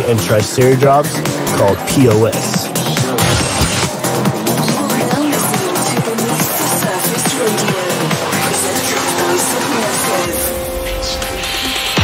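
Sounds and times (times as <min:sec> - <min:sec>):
electronic dance music: 0:03.0 - 0:04.1.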